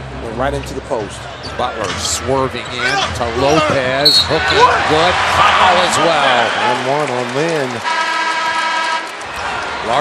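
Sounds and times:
arena crowd noise: 0.0 - 10.0
arena horn blast: 7.8 - 9.2.

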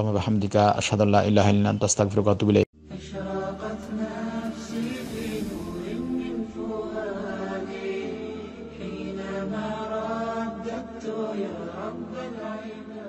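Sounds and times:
low steady drone: 2.8 - 10.1
melodic vocal chanting: 2.8 - 13.0.

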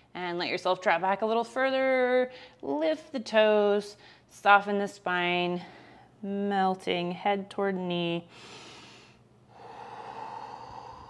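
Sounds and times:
person breathing out: 8.4 - 11.0.

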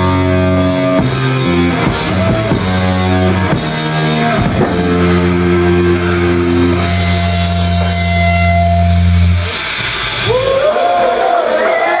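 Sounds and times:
distorted guitar and bass chord: 0.0 - 10.3
people shouting: 10.3 - 12.0.

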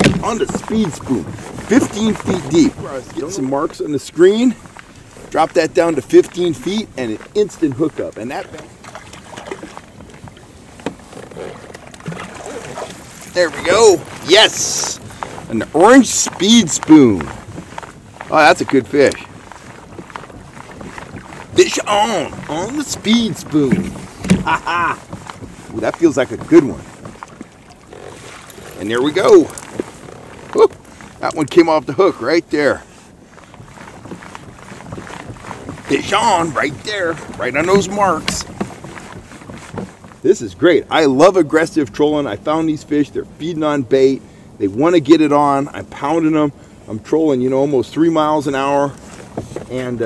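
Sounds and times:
water moving past boat hull: 0.0 - 50.0
wind: 0.0 - 50.0
fishing rod and reel handling: 6.2 - 31.6.

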